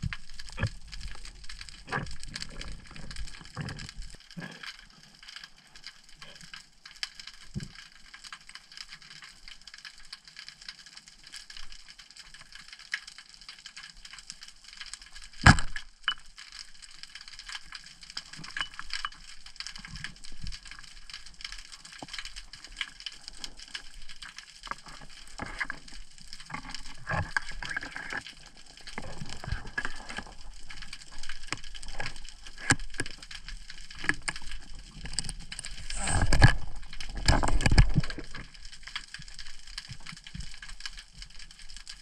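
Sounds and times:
underwater crackling and clicking: 0:00.0 - 0:42.0.

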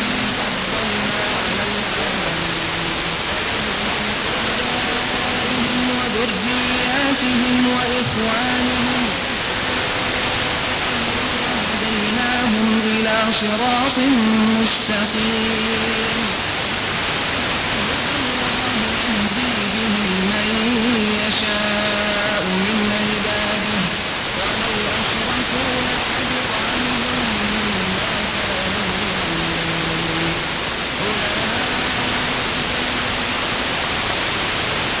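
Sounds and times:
heavy radio static: 0:00.0 - 0:35.0
man reciting melodically: 0:00.0 - 0:35.0.

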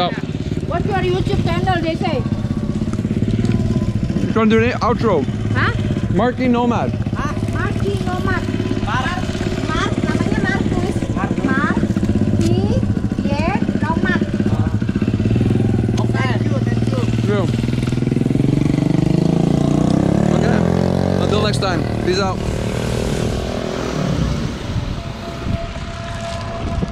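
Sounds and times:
small motorcycle engine running: 0:00.0 - 0:26.9.

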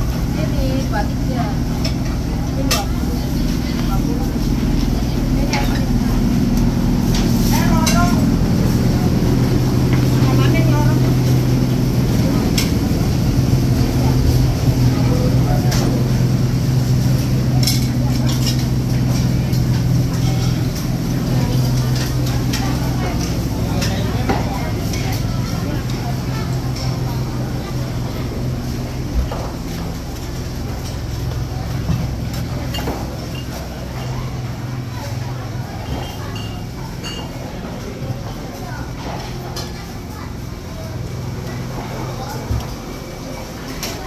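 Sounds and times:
low engine-like hum: 0:00.0 - 0:44.0
voices of vendors and shoppers: 0:00.0 - 0:44.0.

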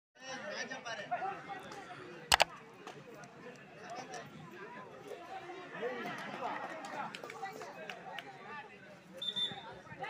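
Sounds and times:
spectators chattering: 0:00.3 - 0:10.0.

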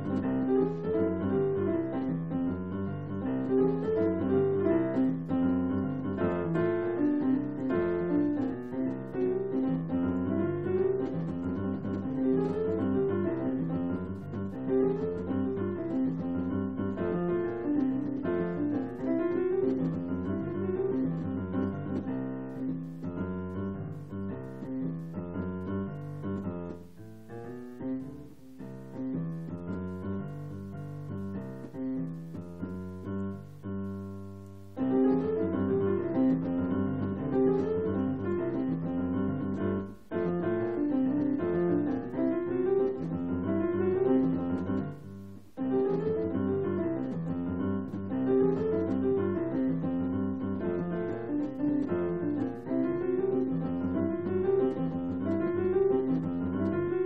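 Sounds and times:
keyboard piano melody: 0:00.0 - 0:57.0.

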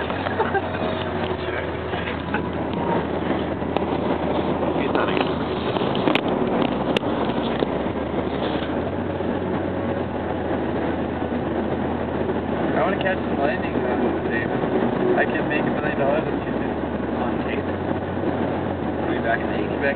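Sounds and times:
car road and engine noise: 0:00.0 - 0:19.9.

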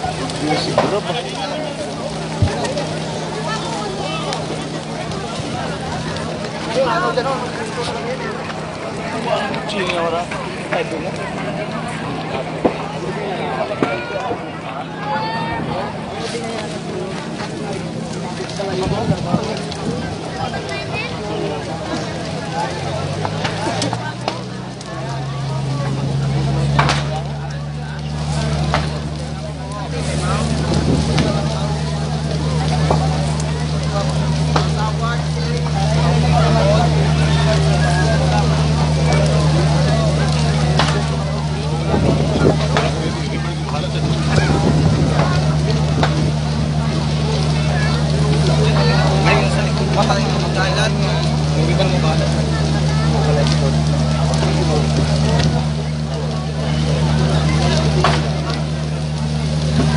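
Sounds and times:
crowd talking and calling: 0:00.0 - 0:59.9
steady engine drone: 0:00.0 - 0:59.9.

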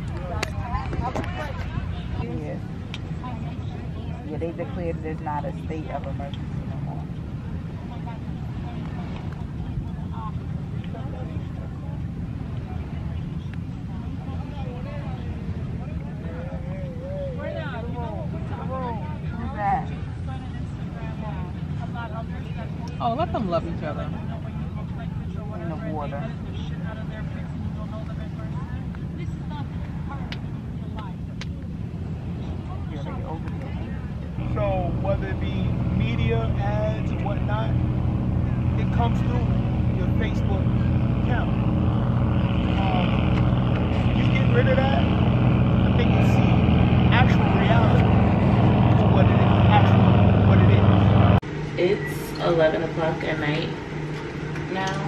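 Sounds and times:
people's voices: 0:00.0 - 0:55.0
steady low drone: 0:00.0 - 0:55.0.

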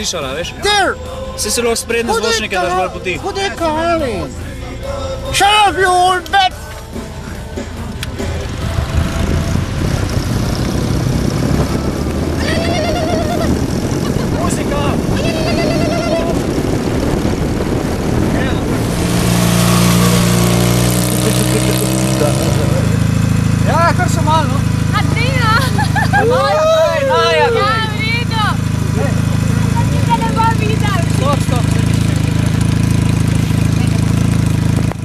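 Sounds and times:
voices calling out: 0:00.0 - 0:09.8, 0:10.9 - 0:34.2
motorcycle engine idling: 0:00.0 - 0:35.0.

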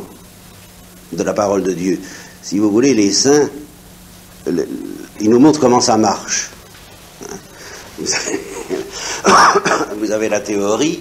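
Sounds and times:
man clearing throat: 0:08.0 - 0:10.0.

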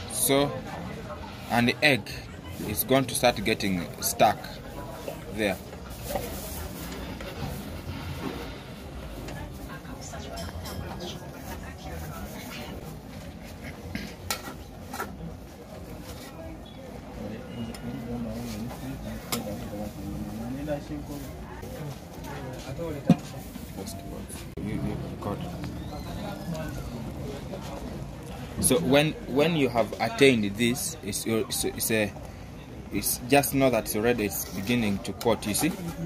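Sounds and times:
faint voices: 0:00.0 - 0:36.0
voices talking: 0:23.7 - 0:32.1.

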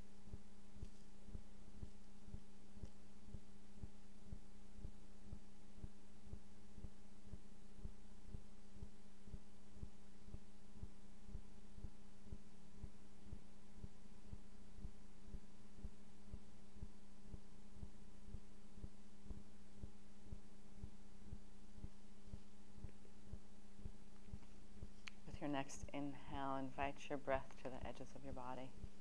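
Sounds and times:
low hum: 0:00.0 - 0:29.0
soft low thumps: 0:00.0 - 0:29.0.

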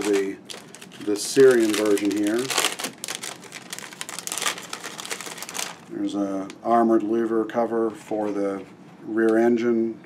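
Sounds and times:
plastic bag crinkling: 0:00.0 - 0:06.5.

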